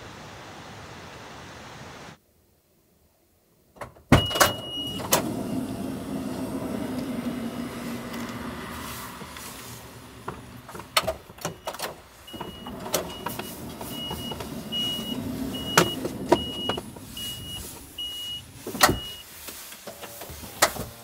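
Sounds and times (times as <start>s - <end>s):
sliding door shutting thud: 3.8s - 21.0s
door warning beeps: 4.1s - 5.8s, 11.4s - 19.3s.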